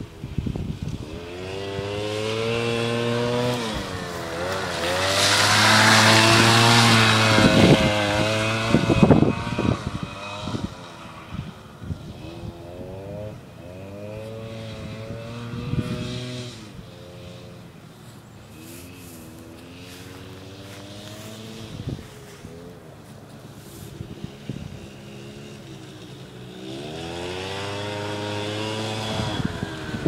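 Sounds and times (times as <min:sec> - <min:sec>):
two-stroke quad engine revving: 0:00.0 - 0:30.0.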